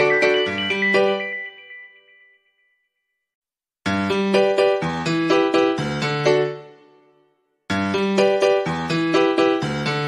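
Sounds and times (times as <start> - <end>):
bright melodic music: 0.0 - 2.9.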